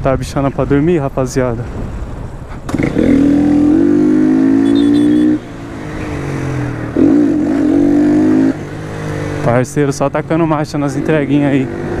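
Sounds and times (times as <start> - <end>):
motorcycle engine revving hard: 2.7 - 9.6.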